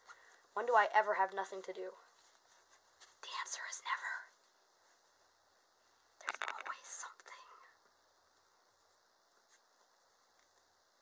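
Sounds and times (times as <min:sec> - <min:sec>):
woman whispering: 0:03.2 - 0:04.4, 0:06.2 - 0:07.8.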